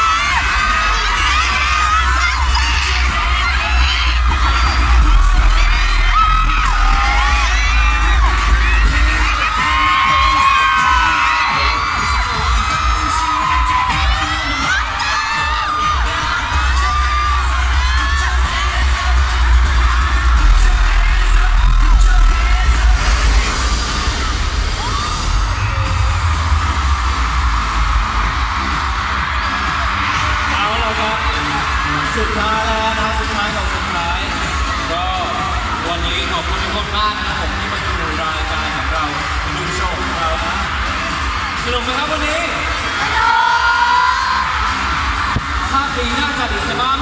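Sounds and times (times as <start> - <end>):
fans screaming and cheering: 0.0 - 47.0
loud pop music with heavy bass: 0.0 - 47.0.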